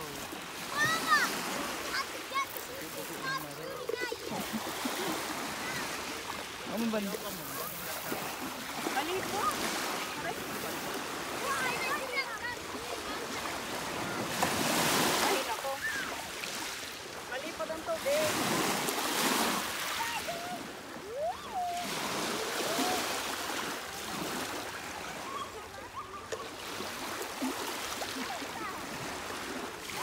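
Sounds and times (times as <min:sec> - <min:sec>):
small waves washing ashore: 0:00.0 - 0:30.0.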